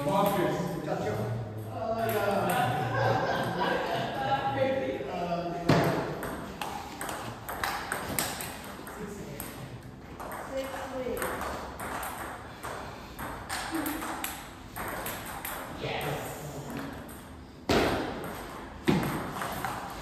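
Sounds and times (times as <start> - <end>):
table tennis balls clicking: 5.8 - 15.8, 18.2 - 20.0.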